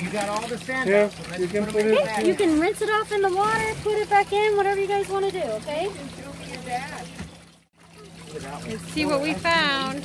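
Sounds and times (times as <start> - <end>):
water trickling through sluice: 0.0 - 10.0.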